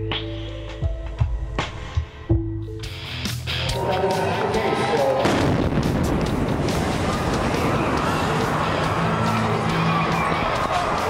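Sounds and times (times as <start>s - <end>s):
dramatic background music: 0.0s - 11.0s
bomb explosion rumbling: 5.2s - 9.0s.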